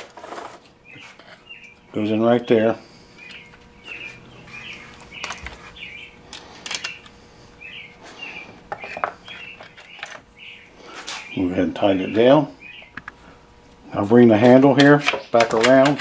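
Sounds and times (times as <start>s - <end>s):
bird chirping: 0.8s - 2.0s, 3.2s - 6.2s, 7.6s - 13.0s
plastic and metal clicks and knocks: 14.8s - 16.0s.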